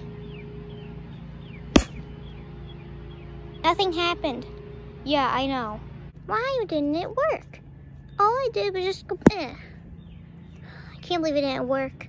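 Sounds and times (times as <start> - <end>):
sharp smack on air pad: 1.8 - 2.0.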